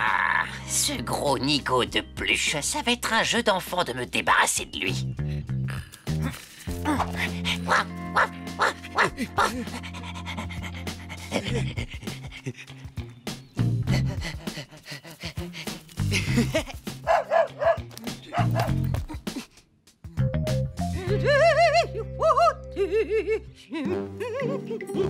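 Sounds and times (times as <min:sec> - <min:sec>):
cartoon background music: 0:00.0 - 0:19.0, 0:20.1 - 0:25.0
cartoon dog panting: 0:07.1 - 0:13.1, 0:13.8 - 0:16.0.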